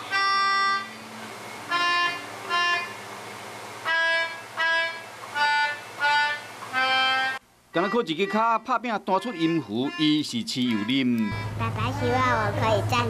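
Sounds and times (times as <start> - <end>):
melodica playing slow tune: 0.0 - 3.2, 3.8 - 12.6.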